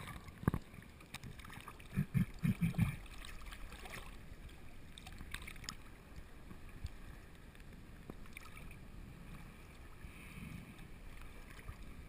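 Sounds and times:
sea water sloshing: 0:00.0 - 0:12.0.

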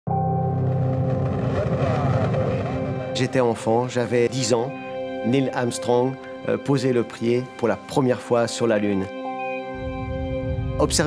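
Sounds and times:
sustained droning chord: 0:00.1 - 0:11.0
deep rumble: 0:00.2 - 0:04.2.

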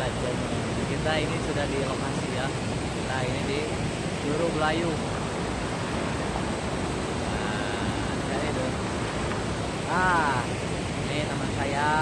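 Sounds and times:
stream over rocks: 0:00.0 - 0:12.0
waterfall rushing: 0:00.0 - 0:12.0.

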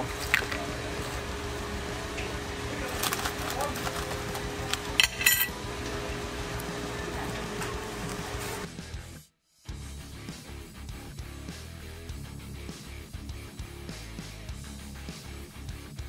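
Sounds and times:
steady hum: 0:00.0 - 0:08.7
faint background music: 0:00.0 - 0:16.0
clinks and rustles of food handling: 0:02.8 - 0:05.6.

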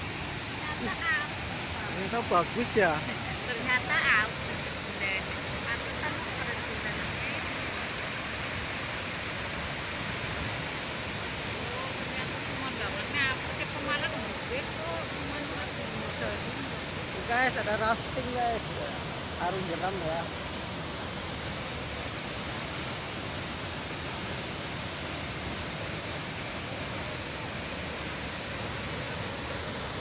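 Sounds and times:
waterfall rushing: 0:00.0 - 0:30.0
voices: 0:00.6 - 0:07.6.

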